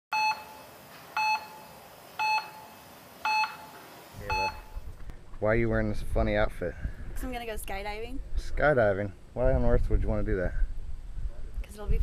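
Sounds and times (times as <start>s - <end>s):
heart monitor beeps: 0.1s - 0.6s, 1.2s - 4.8s.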